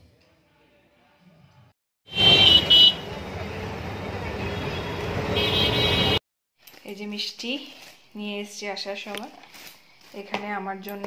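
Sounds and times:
vehicle horn honking: 2.1s - 3.2s, 4.4s - 6.2s
traffic and engine rumble: 2.2s - 11.0s.

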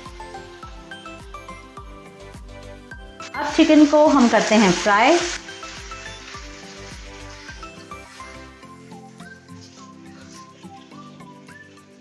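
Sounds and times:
light background music: 0.0s - 12.0s
chicken sizzling in hot oil: 3.0s - 12.0s.

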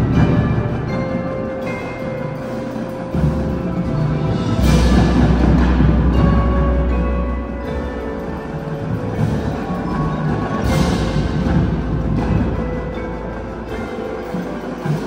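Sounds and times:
marimbas playing: 0.0s - 15.0s.

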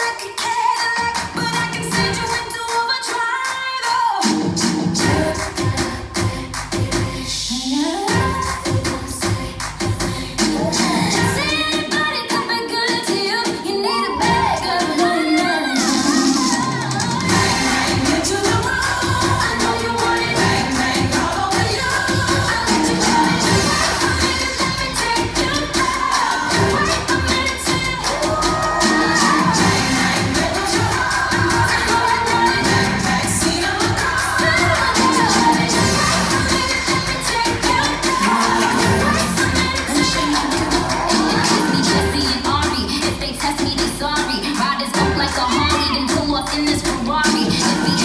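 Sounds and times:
pop dance music over loudspeakers: 0.0s - 48.0s.

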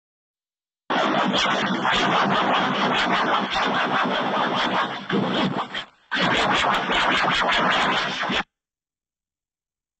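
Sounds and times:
harsh distorted noise: 0.9s - 8.5s.

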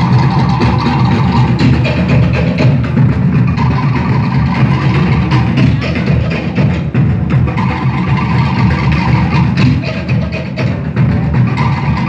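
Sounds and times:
deep drums: 0.0s - 12.0s.

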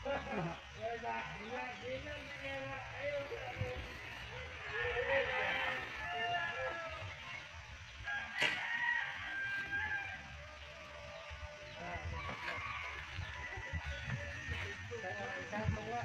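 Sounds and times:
rooster crowing: 3.5s - 15.5s.

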